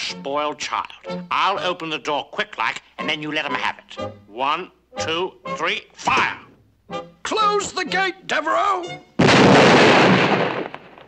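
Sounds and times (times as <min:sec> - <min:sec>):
cartoon explosion: 0:09.2 - 0:11.0.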